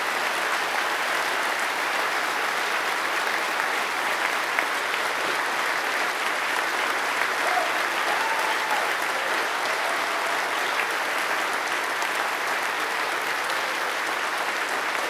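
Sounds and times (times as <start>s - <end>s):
audience applauding: 0.0s - 15.0s.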